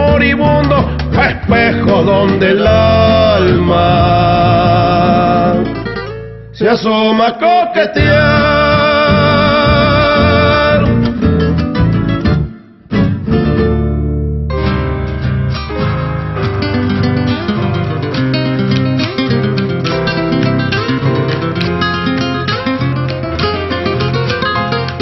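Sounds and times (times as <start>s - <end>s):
plucked and strummed guitar: 0.0s - 7.0s, 7.8s - 25.0s
bass line: 0.0s - 7.1s, 8.0s - 25.0s.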